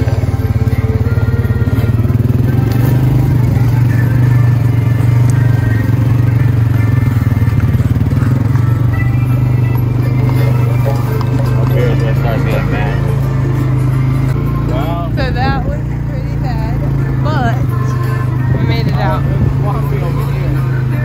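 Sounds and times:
atv engine droning: 0.0 - 21.0.

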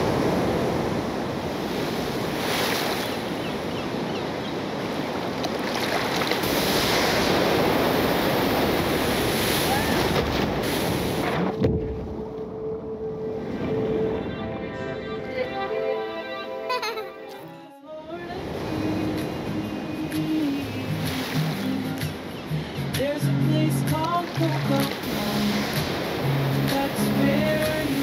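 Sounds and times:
waves breaking: 0.0 - 16.6, 17.4 - 28.0
wind: 0.0 - 28.0
water splash: 5.2 - 12.1, 23.9 - 28.0
steady low tone: 11.6 - 16.6.

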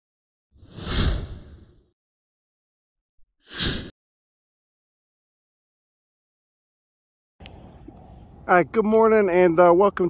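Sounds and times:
whoosh sound effects: 0.6 - 1.8, 3.5 - 3.9.

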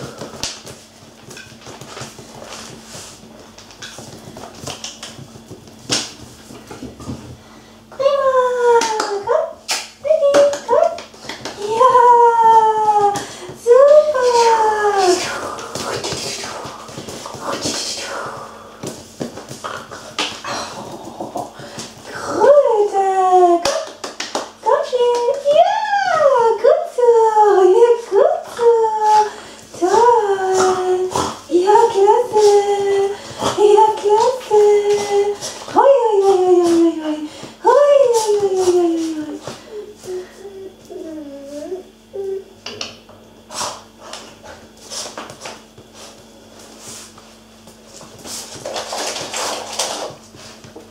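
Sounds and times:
dog claws clicking on tiles: 3.4 - 6.9, 8.8 - 12.0, 48.5 - 50.2.

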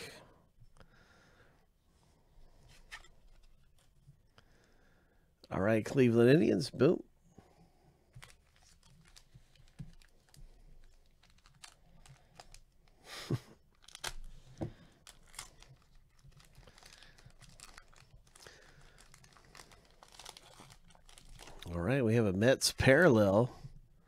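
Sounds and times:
foil wrapper crinkling: 8.1 - 12.9, 13.7 - 21.8
foil pack tearing: 13.8 - 14.3, 15.0 - 21.6.

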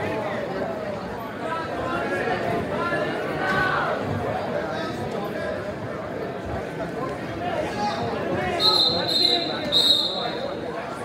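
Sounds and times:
gym crowd chatter: 0.0 - 11.0
referee's whistle blasts: 8.6 - 10.6.

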